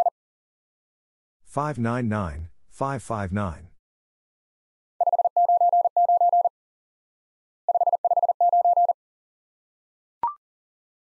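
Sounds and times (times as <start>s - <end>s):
morse code tone: 5.0s - 6.5s, 7.7s - 9.0s.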